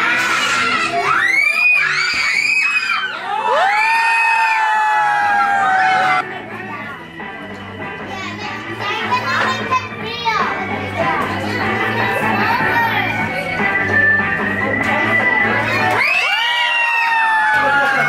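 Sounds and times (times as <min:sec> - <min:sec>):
children squealing and shouting: 0:00.0 - 0:06.2, 0:15.7 - 0:18.0
background music: 0:00.0 - 0:18.0
scattered voices: 0:05.8 - 0:16.1.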